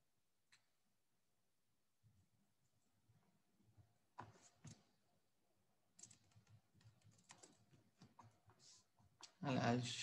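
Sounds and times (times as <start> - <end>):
faint keyboard typing: 5.9 - 9.5.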